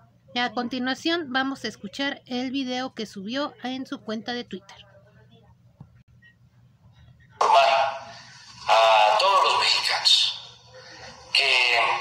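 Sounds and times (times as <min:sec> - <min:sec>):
man speaking: 0:07.4 - 0:10.5, 0:11.3 - 0:12.0.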